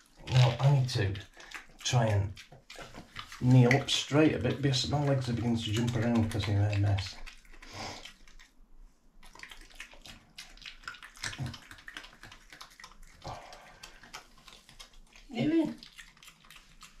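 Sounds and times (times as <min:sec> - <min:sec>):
badger chewing and crunching food: 0:00.0 - 0:17.0.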